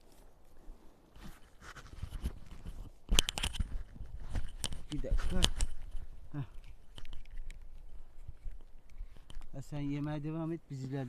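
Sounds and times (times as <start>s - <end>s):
crunching in dry grass and gravel: 0.0s - 11.0s.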